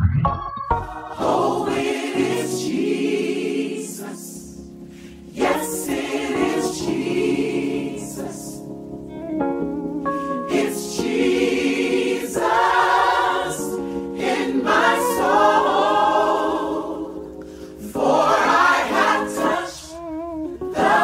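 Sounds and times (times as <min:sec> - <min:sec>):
gospel choir singing: 0:00.8 - 0:09.2, 0:10.0 - 0:20.0, 0:20.6 - 0:21.0.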